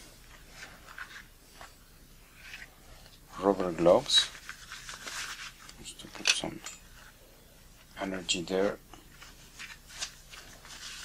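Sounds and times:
gloves rustling: 0.0 - 11.0.

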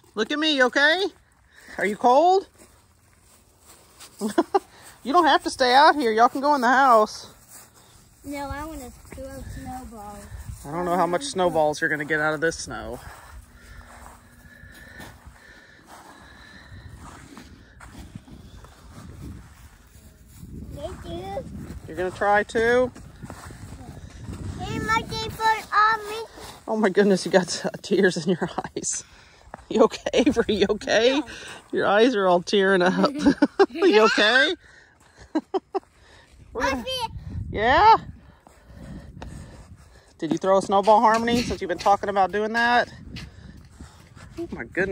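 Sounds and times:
faint footsteps on frosty ground: 0.0 - 44.9
wind rumbling on microphone: 8.3 - 10.8, 16.3 - 25.7, 36.4 - 40.1, 42.8 - 44.9.

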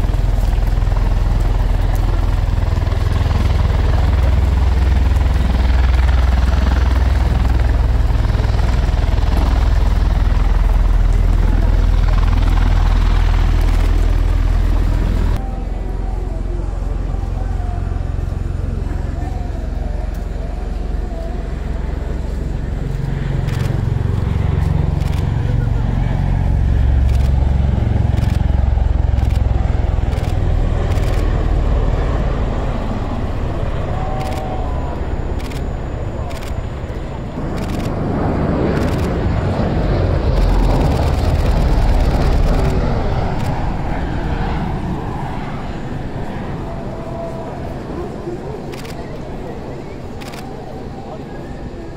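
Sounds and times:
aircraft engines deep rumble: 0.0 - 51.9.

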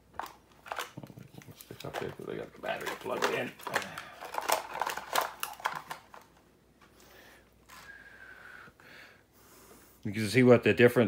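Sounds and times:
plastic clicks and rattles: 0.1 - 6.4.

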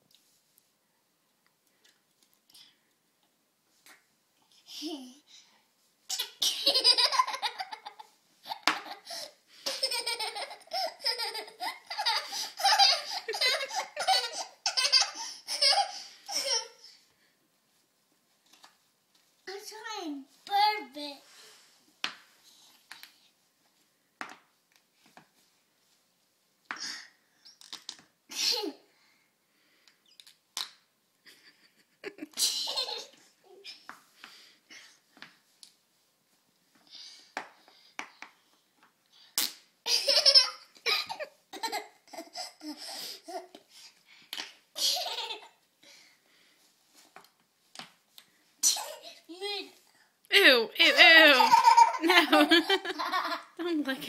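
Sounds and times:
girl giggling: 6.4 - 16.8, 31.3 - 33.6, 39.9 - 43.5, 50.9 - 53.8.

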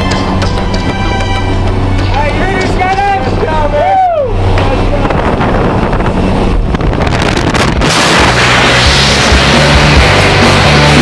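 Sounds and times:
plane engine droning: 0.0 - 11.0
wind rushing: 3.3 - 10.8.

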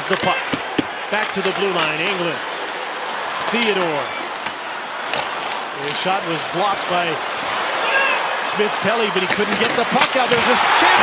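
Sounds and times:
sticks striking puck on ice: 0.0 - 2.2, 3.4 - 6.1, 9.2 - 11.0
arena crowd noise: 0.0 - 11.0.

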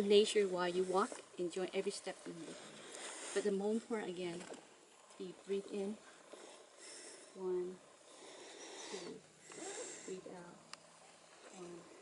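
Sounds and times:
in-breath through the nose: 2.4 - 3.5, 8.1 - 10.2
woman softly counting: 11.6 - 12.0.

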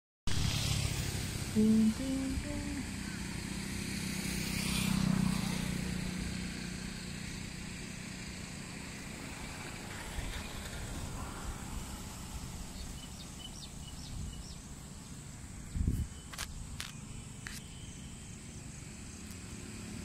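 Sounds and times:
passing motor vehicle: 0.3 - 20.0.

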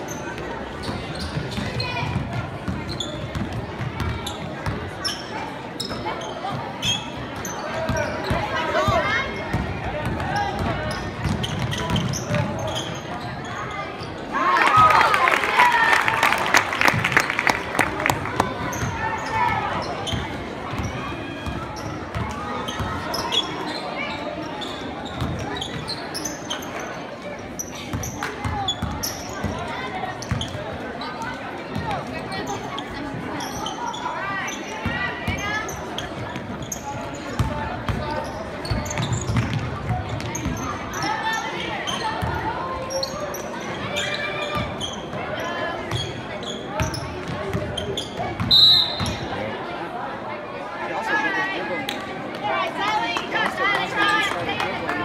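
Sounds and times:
voices calling out in a hall: 0.0 - 55.0
basketball bouncing on wooden court: 0.8 - 4.8, 9.5 - 12.7, 25.2 - 25.8, 30.3 - 30.6, 38.8 - 40.6.

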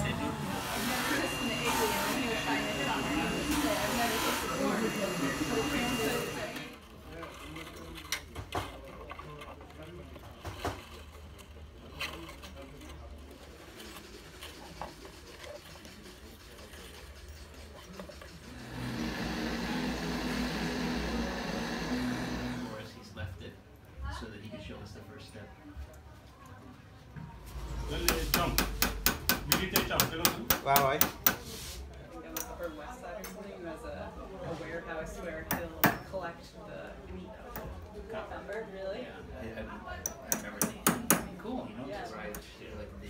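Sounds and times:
faint voices: 0.0 - 23.1
hammer tapping metal: 28.0 - 31.4, 40.3 - 41.3.

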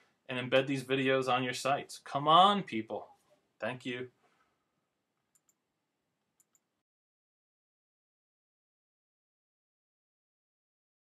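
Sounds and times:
computer mouse clicks: 5.3 - 5.6, 6.4 - 6.7.

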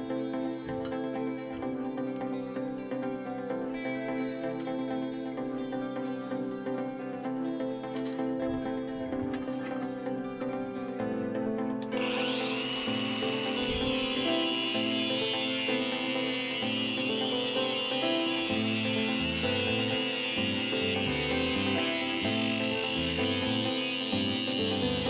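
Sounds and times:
plucked melody music: 0.0 - 25.0
angle grinder cutting steel: 12.0 - 25.0.

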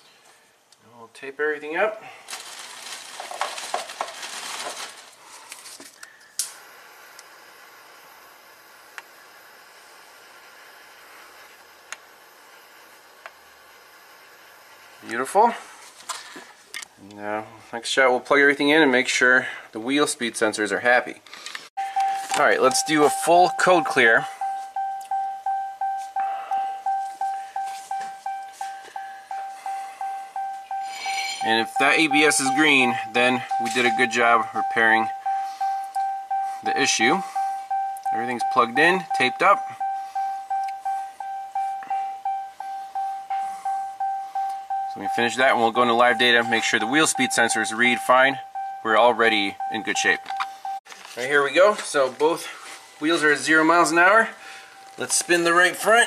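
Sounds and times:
tape crackling and rustling: 2.2 - 7.3, 15.8 - 16.9, 50.3 - 53.0, 54.7 - 55.4
car warning chime dinging: 21.8 - 50.8.

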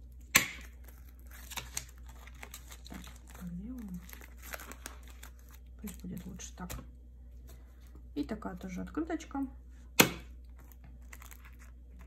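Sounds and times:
plastic sleeve pages crinkling: 0.0 - 6.8, 10.4 - 12.0.

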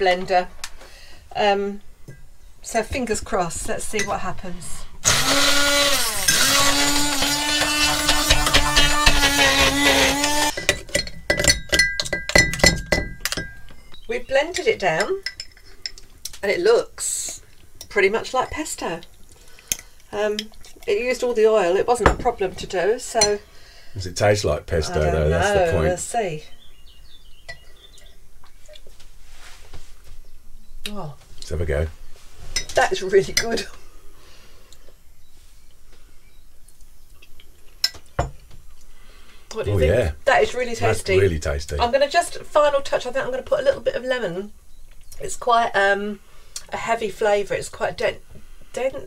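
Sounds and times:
hand blender motor whine: 5.0 - 10.6
clinks and knocks against jug: 10.6 - 13.9
quiet mouth sounds tasting: 36.6 - 37.8.

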